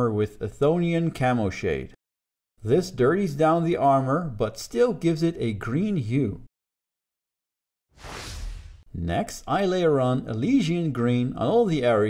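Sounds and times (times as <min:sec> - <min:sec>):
soft whoosh of noise: 0:08.0 - 0:08.9.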